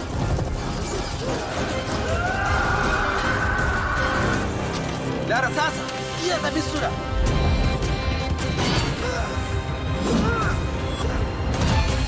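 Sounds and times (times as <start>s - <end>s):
dramatic background music: 0.0s - 12.0s.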